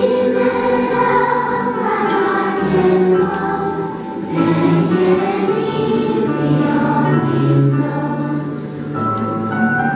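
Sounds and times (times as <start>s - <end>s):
children's choir singing: 0.0s - 9.9s.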